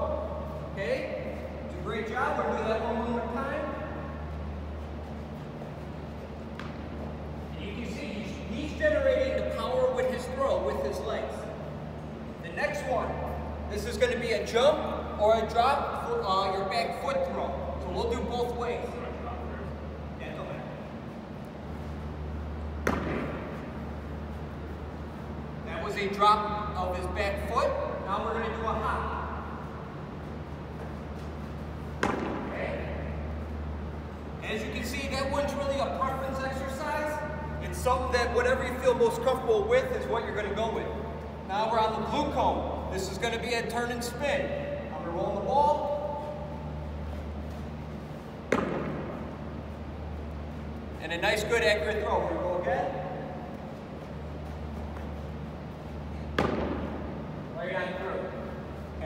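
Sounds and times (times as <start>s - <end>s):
tennis ball hitting wall: 22.8s - 23.6s, 32.0s - 32.5s, 48.5s - 49.3s, 56.3s - 57.0s.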